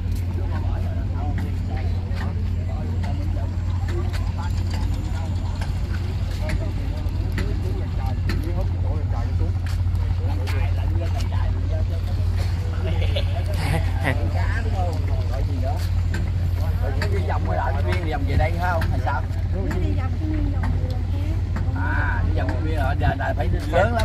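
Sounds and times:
low rumble: 0.0s - 24.0s
people talking: 0.0s - 24.0s.

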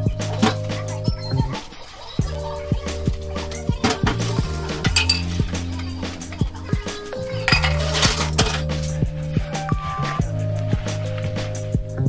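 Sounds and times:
background music with steady beat: 0.0s - 12.0s
dishes clinking in sink: 4.9s - 5.3s, 7.4s - 8.6s.

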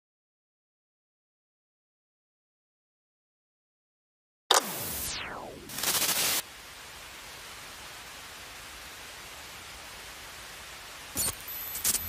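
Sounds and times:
burst of hissing noise: 4.6s - 6.5s
steady hiss: 4.6s - 12.0s.

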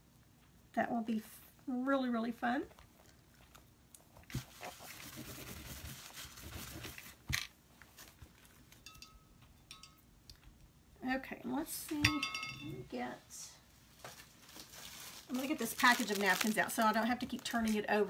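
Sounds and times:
plastic crinkling rustle: 2.8s - 8.8s, 13.8s - 18.0s.

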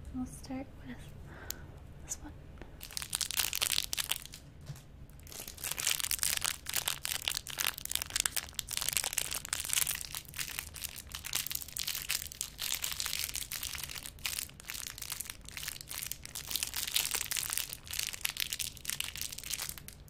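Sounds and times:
plastic wrappers crinkling: 2.8s - 4.5s, 5.1s - 20.0s.

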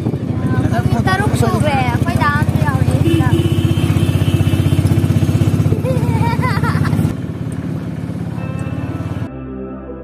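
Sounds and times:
small vehicle engine pulsing: 0.0s - 9.3s.

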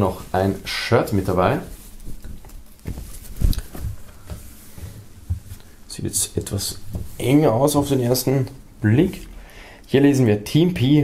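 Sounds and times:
fabric rustling: 0.0s - 9.3s
soft thumps: 2.2s - 5.7s, 6.8s - 8.2s.

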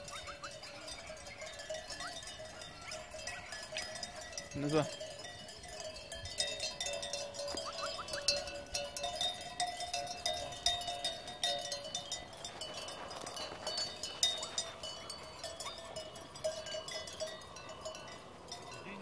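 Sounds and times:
animal bells clanking: 0.0s - 19.0s.

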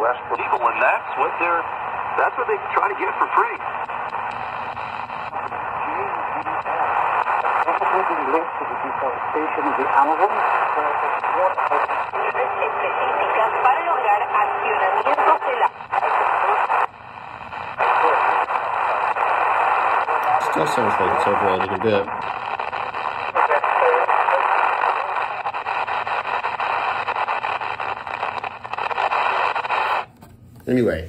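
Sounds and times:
voice over portable radio: 0.0s - 4.2s, 5.4s - 16.9s, 17.6s - 29.9s
radio hiss and distortion: 0.0s - 30.1s.

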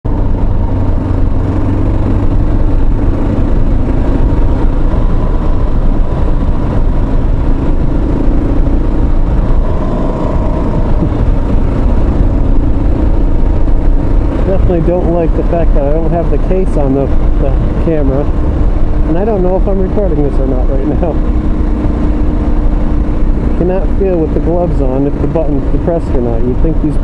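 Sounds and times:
motorcycle engine running: 0.0s - 27.0s
wind rushing: 0.4s - 15.4s.

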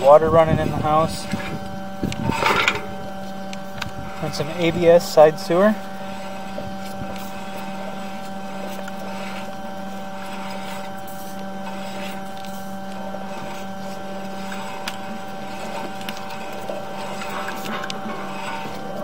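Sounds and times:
sewer camera gear humming: 0.0s - 19.0s.

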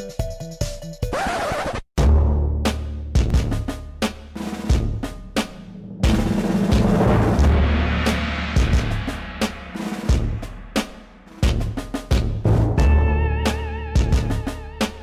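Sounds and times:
sharp drum strikes: 2.0s - 13.0s
deep booming bass hit: 5.7s - 12.9s.

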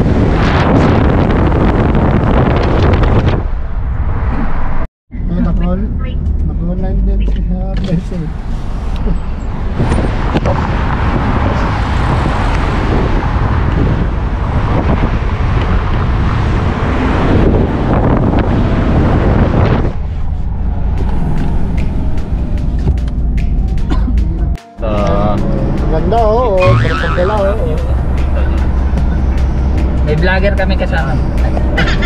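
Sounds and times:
road and wind noise in car: 0.0s - 32.0s.

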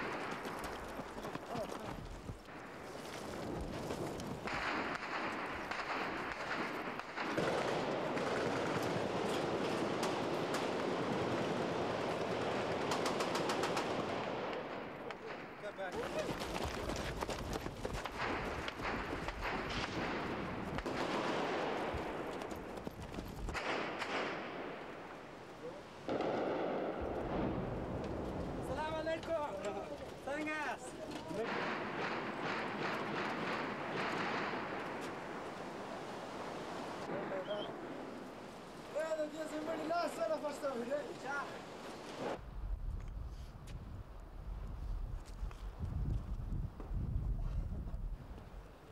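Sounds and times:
single gunshots: 26.0s - 28.7s.

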